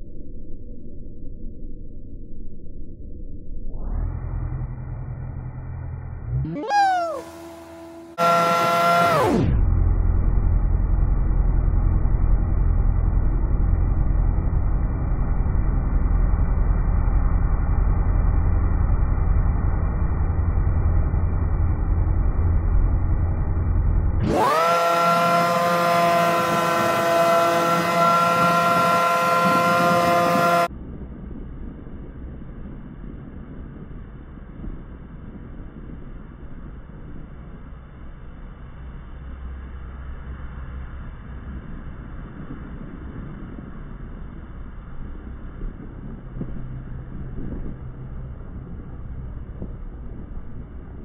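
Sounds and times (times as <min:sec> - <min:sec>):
wind rumble on microphone: 0:03.4 - 0:51.0
high-revving engine whine: 0:03.7 - 0:31.2
jet boat motor running: 0:04.1 - 0:30.7.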